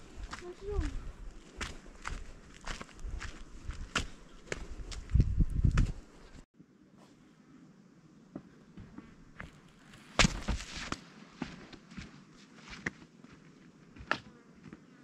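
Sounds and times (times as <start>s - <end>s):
footsteps crunching on gritty dirt: 0.0s - 6.4s, 8.8s - 14.9s.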